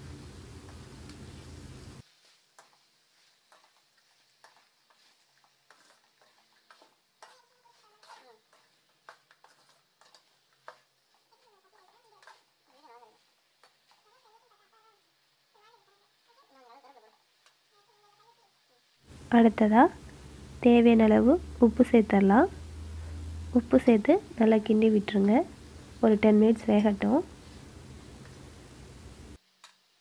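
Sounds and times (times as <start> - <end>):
metal ladle scraping pan: 3.4 - 10.8.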